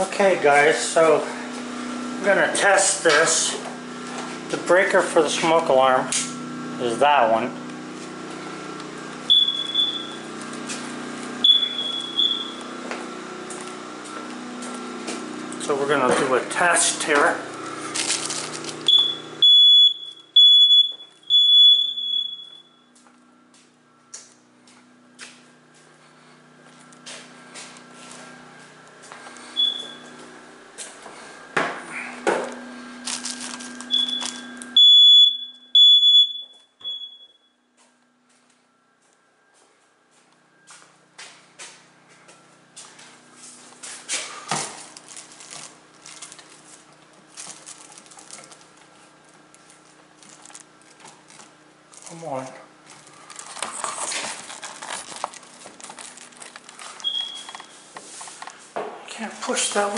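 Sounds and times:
smoke alarm beeping: 0:08.6 - 0:10.5, 0:11.3 - 0:12.8, 0:18.8 - 0:24.4, 0:27.9 - 0:30.4, 0:33.3 - 0:37.8, 0:56.8 - 0:58.0
smoke alarm chirp: 0:09.2 - 0:10.3, 0:11.4 - 0:12.7, 0:18.8 - 0:23.0, 0:29.4 - 0:30.3, 0:33.9 - 0:37.7, 0:57.0 - 0:57.9
knocks and handling noise: 0:52.9 - 0:59.0.

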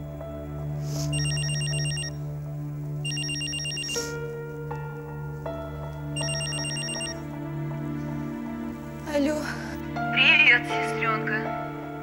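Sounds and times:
soft background music: 0:00.0 - 0:12.0
mobile phone ringing: 0:01.1 - 0:02.1, 0:03.0 - 0:04.2, 0:06.2 - 0:07.2.

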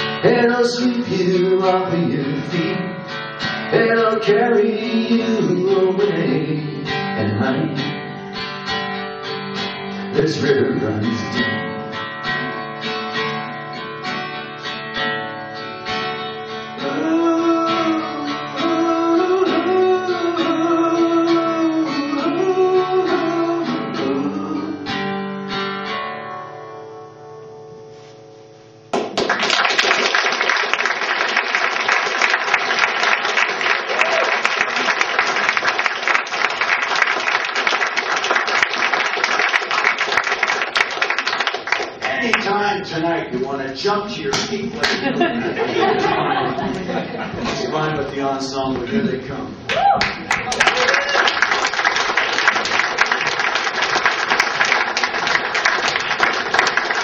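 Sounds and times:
acoustic guitar strumming: 0:00.0 - 0:29.3, 0:32.5 - 0:49.7
person singing: 0:03.7 - 0:08.0, 0:16.8 - 0:25.1
audience applause: 0:29.0 - 0:42.6, 0:49.7 - 0:57.0.

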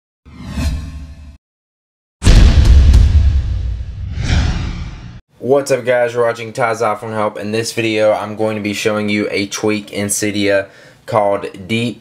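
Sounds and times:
whoosh sound effect: 0:03.0 - 0:05.2.

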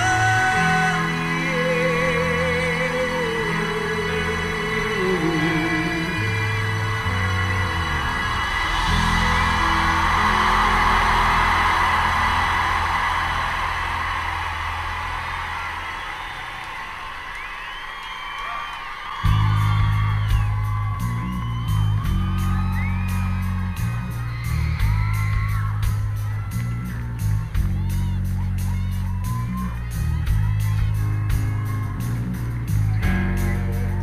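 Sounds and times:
crowd cheering: 0:00.0 - 0:34.0
fans whooping: 0:00.0 - 0:34.0.

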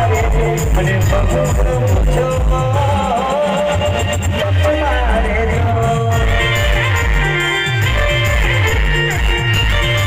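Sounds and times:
live band music: 0:00.0 - 0:10.0
steady drum beat: 0:00.0 - 0:10.0.

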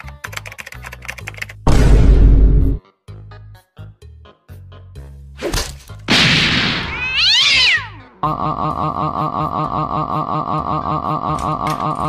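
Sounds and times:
cat yowling: 0:06.8 - 0:08.0.

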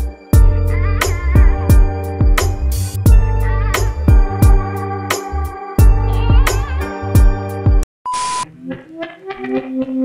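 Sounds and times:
high test-tone beep: 0:08.1 - 0:08.4.

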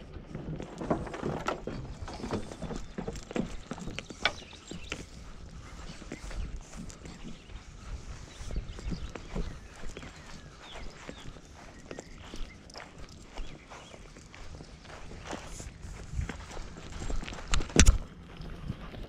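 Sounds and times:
low bumps: 0:00.0 - 0:19.0
footsteps on grass: 0:00.6 - 0:19.0
sleeve and leash rustling: 0:04.3 - 0:19.0.

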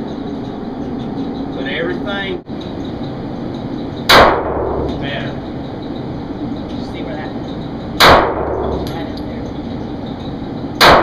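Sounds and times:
handgun shot echoing in tunnel: 0:04.1 - 0:05.0, 0:08.0 - 0:08.9, 0:10.8 - 0:11.0.

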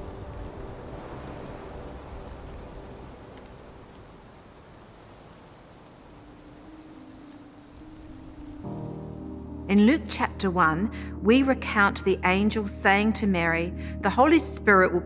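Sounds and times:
rushing wind and rain: 0:00.0 - 0:11.2.

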